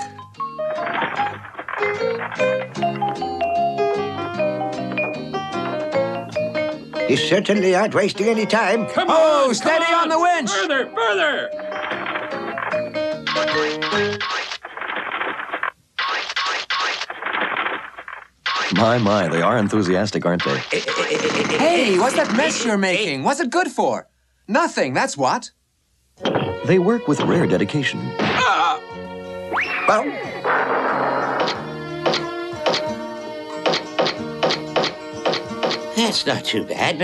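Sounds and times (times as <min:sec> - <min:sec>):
background music: 0:00.0 - 0:14.2, 0:26.1 - 0:37.0
wooden mallets striking chisels: 0:33.7 - 0:35.9.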